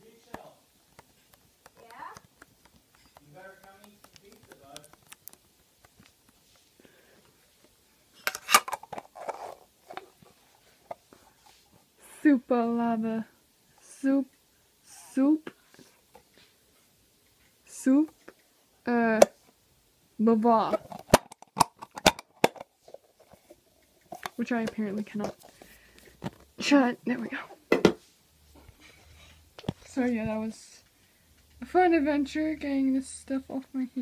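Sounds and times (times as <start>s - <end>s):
metal lid clicking and scraping: 8.3s - 10.0s, 20.7s - 22.6s.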